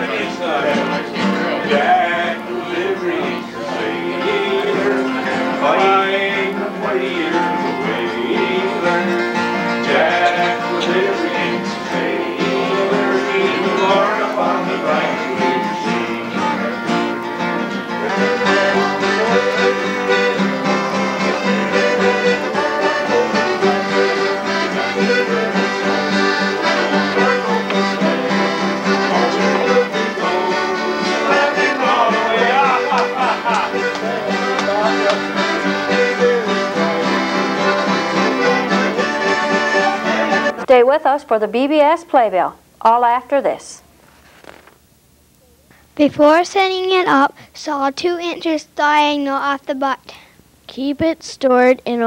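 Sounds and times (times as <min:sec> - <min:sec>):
accordion playing lively tune: 0:00.0 - 0:40.7.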